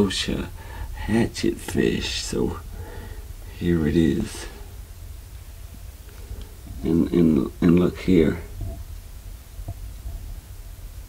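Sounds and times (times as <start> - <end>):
man speaking: 0.0 - 2.7, 3.5 - 4.6, 6.7 - 8.6
low steady hum: 0.0 - 11.0
faint ticks: 9.6 - 10.3.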